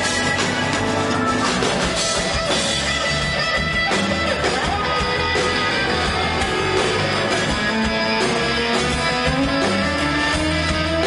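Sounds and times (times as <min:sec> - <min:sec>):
electric guitars: 0:00.0 - 0:11.0
steady bass line: 0:00.0 - 0:11.0.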